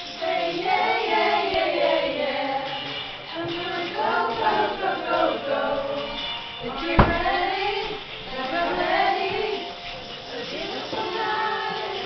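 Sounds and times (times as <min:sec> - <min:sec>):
women singing together: 0:00.0 - 0:12.0.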